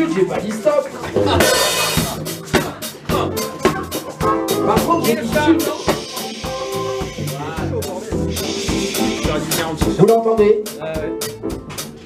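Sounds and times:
drum kit beat: 0.0 - 12.0
live band playing: 0.0 - 12.0.

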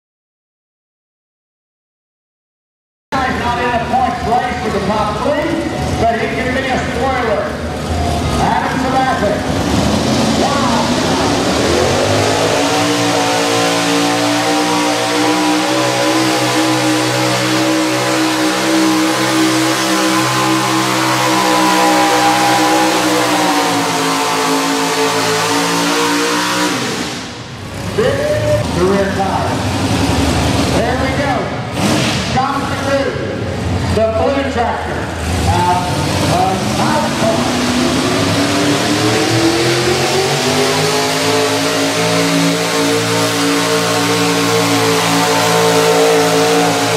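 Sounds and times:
man talking: 3.1 - 7.6, 8.3 - 9.6, 10.2 - 11.3, 28.0 - 29.7, 30.7 - 31.6, 32.3 - 37.9
tractor engine revving: 3.2 - 46.9.

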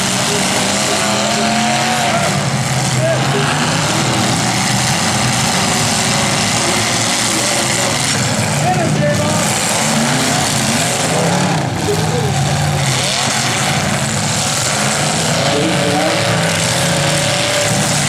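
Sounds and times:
car engines revving: 0.0 - 18.0.

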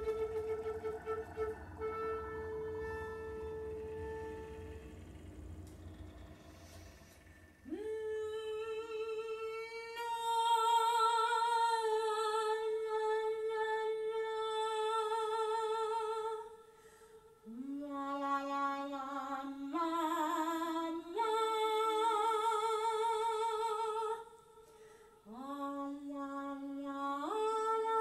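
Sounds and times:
flute note: 0.0 - 7.3
low hum: 0.0 - 10.0.

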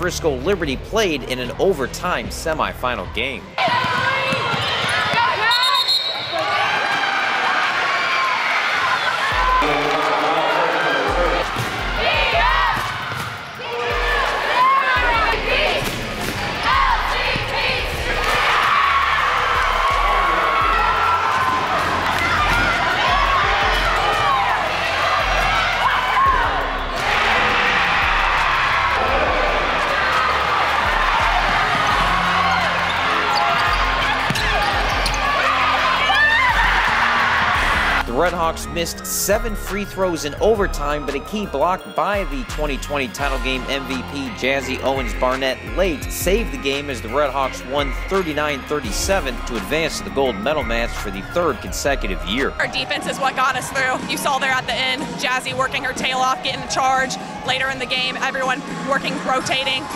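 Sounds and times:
voices shouting: 3.6 - 38.0.

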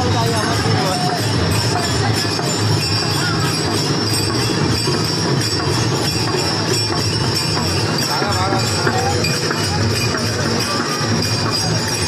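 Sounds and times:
brass hand cymbals clashing: 0.0 - 12.0
hand drum beat: 0.0 - 12.0.

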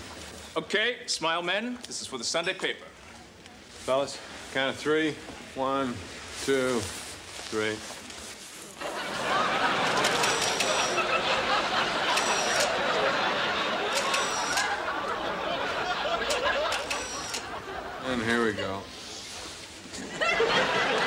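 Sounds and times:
studio audience laughing: 8.8 - 18.2, 20.0 - 21.0
camera shutter clicking: 9.9 - 11.0, 12.1 - 12.8, 13.9 - 14.8, 16.3 - 17.5.

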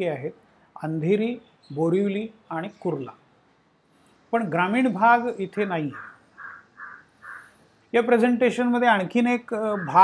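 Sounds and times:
bird calling: 4.9 - 7.7, 9.5 - 10.0.

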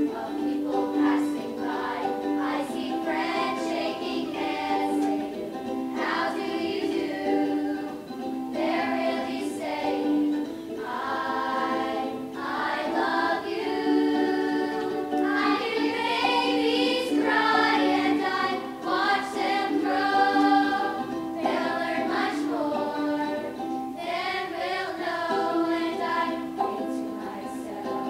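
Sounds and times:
children singing in unison: 0.0 - 28.0
ukulele: 0.0 - 28.0.

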